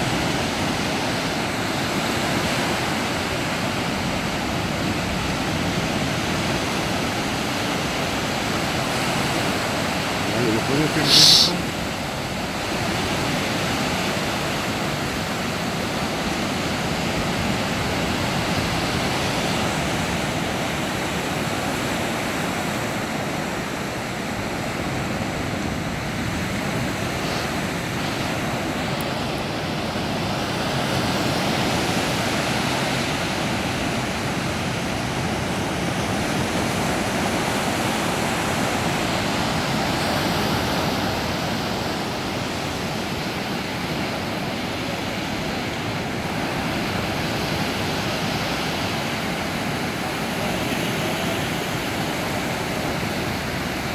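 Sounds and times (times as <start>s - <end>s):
waves breaking on beach: 0.0s - 53.9s.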